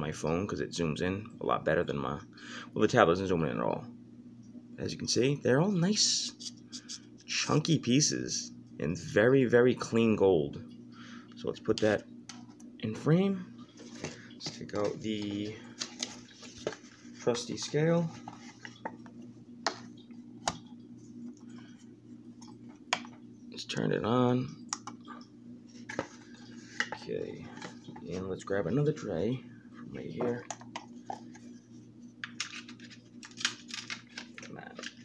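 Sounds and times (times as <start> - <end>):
faint steady hum: 0.0 - 35.0.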